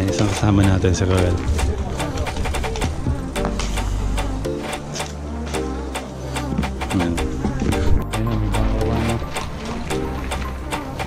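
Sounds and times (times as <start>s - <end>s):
background music with steady beat: 0.0s - 11.0s
held bass line: 0.0s - 11.0s.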